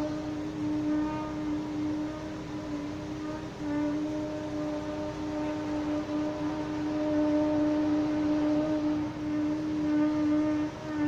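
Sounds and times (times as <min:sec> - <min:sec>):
construction machine drone: 0:00.0 - 0:11.0.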